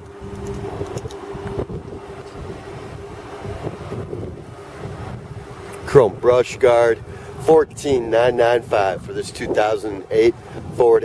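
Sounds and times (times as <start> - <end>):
low hum: 0.0 - 11.0
wind buffeting microphone: 0.0 - 11.0.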